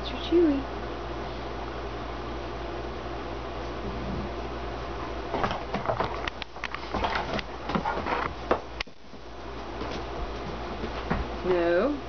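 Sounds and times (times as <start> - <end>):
dog scrambling and tussling: 4.9 - 11.3.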